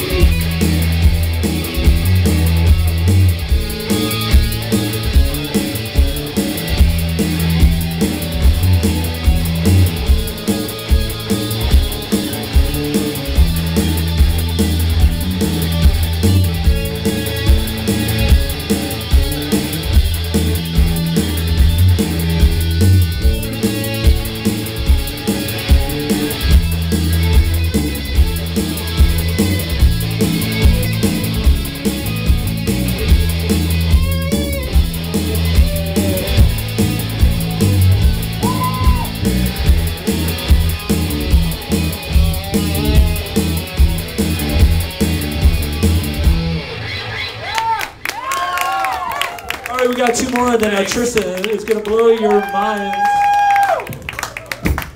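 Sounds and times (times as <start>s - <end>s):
loud bass notes: 0.0s - 47.3s
rock band playing: 0.0s - 53.9s
audience whooping: 34.6s - 39.6s, 46.8s - 54.9s.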